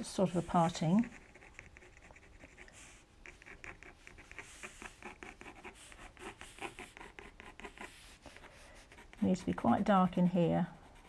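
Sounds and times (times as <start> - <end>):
pencil scratching on paper: 0.0 - 11.0.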